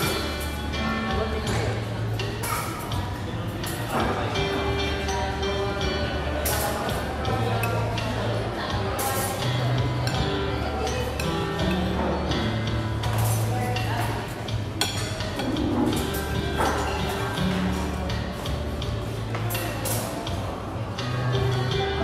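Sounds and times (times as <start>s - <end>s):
background music: 0.0s - 22.0s
murmur of voices: 0.0s - 22.0s
dishes clinking: 9.0s - 17.8s.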